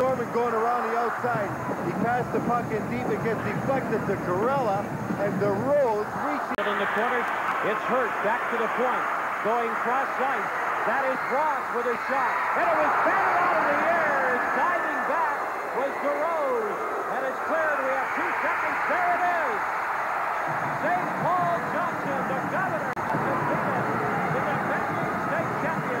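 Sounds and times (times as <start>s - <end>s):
crowd cheering and shouting: 0.0s - 4.4s, 5.4s - 26.0s.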